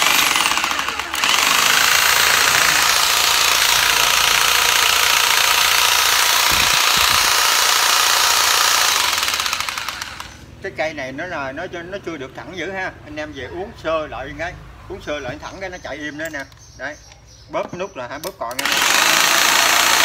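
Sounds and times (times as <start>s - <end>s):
electric hedge trimmer running: 0.0s - 10.4s, 18.6s - 20.0s.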